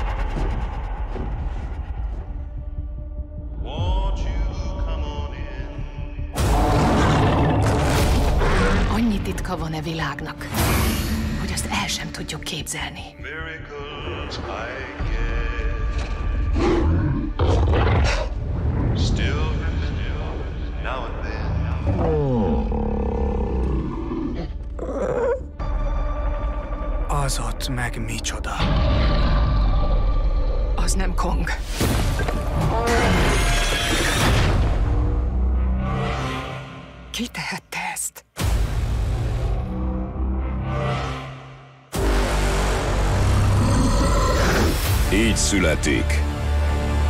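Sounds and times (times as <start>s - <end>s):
dramatic trailer music: 0.0s - 47.0s
giant ape monster roar: 6.5s - 8.9s, 21.4s - 25.4s, 28.6s - 30.8s, 42.9s - 45.0s.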